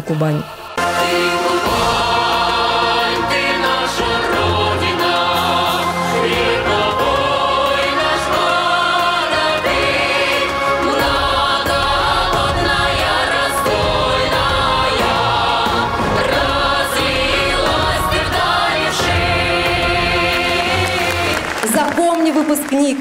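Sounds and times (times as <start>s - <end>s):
children's choir singing: 0.5s - 21.6s.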